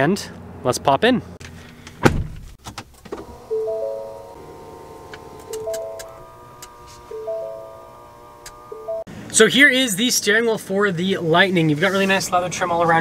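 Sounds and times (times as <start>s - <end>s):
music with held notes: 3.4s - 9.1s
push-button click: 5.1s - 7.5s.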